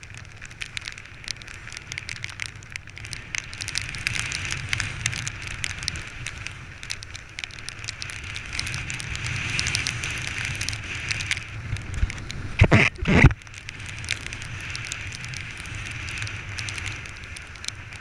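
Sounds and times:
rush of wind and water: 0:00.0 - 0:18.0.

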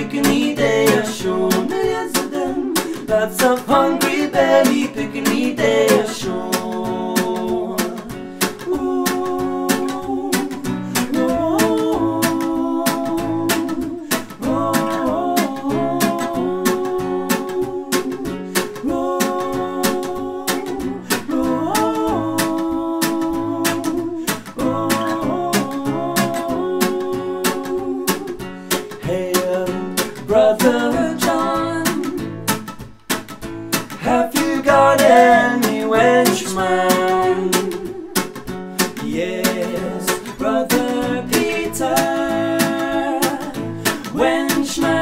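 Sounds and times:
men singing: 0:00.0 - 0:32.6, 0:33.9 - 0:45.0
acoustic guitar strumming: 0:00.0 - 0:45.0.

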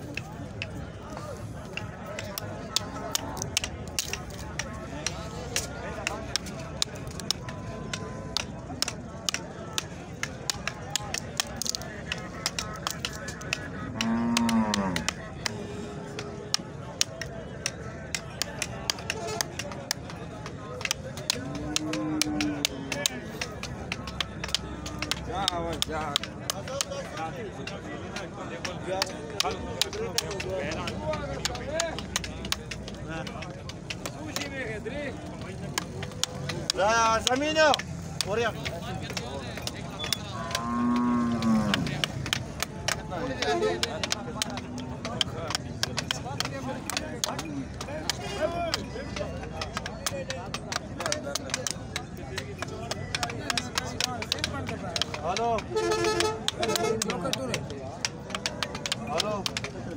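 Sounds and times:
cow mooing: 0:14.0 - 0:15.1, 0:40.4 - 0:41.9.

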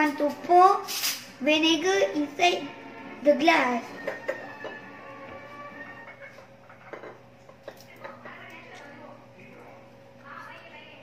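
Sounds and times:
faint background music: 0:00.0 - 0:11.0
steady low hum: 0:00.0 - 0:11.0
voices from television: 0:00.0 - 0:11.0.

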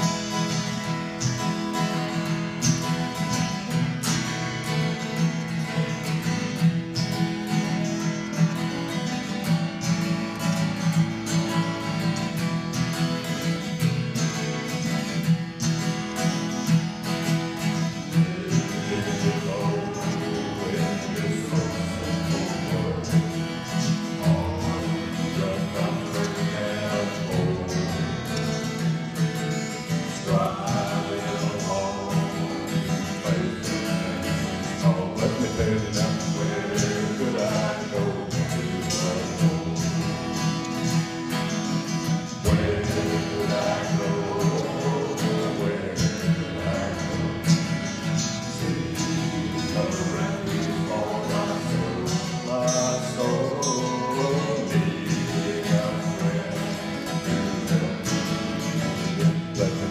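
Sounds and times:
acoustic guitars strumming: 0:00.0 - 0:59.9
person singing: 0:17.8 - 0:28.8, 0:29.9 - 0:41.0, 0:42.3 - 0:59.9.

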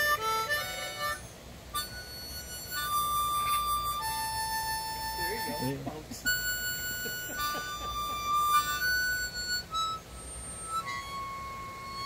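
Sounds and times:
harmonica long held notes: 0:00.0 - 0:12.0.

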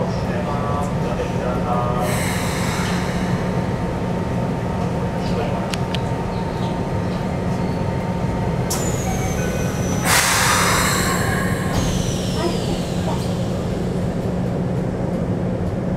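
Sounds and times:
low hum of train car: 0:00.0 - 0:15.9
train doors closing: 0:00.8 - 0:15.8.

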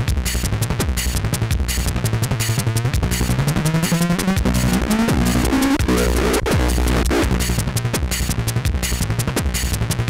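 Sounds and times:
electronic music with fast beat: 0:00.0 - 0:10.0
synth bass line climbing: 0:03.0 - 0:07.7.

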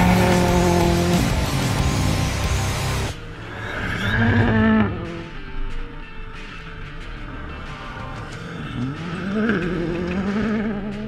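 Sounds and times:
rally car engine revving: 0:00.0 - 0:05.6.

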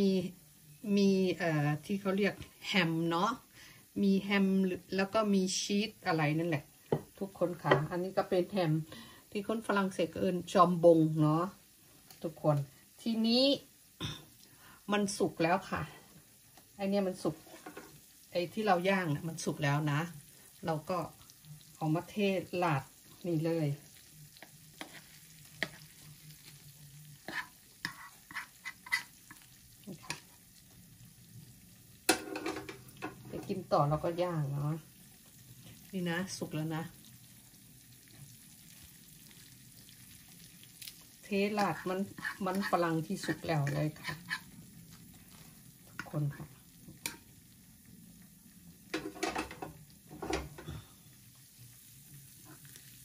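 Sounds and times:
fork scraping pan: 0:24.8 - 0:26.0, 0:27.2 - 0:29.4, 0:42.1 - 0:42.7, 0:43.6 - 0:44.6.

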